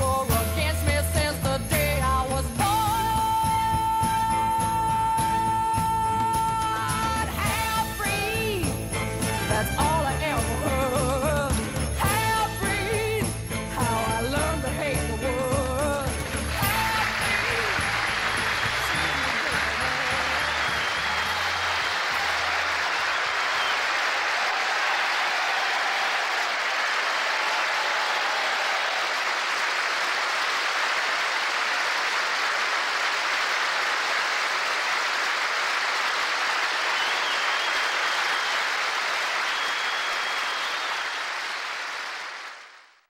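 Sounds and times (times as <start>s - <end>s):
audience applauding: 16.1s - 43.0s.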